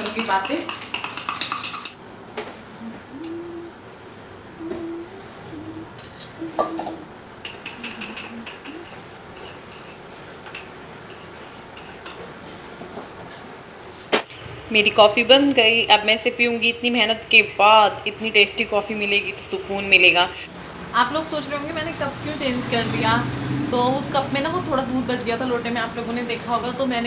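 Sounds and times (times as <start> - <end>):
utensils clinking against a mug: 0.0 - 2.0, 6.6 - 12.4.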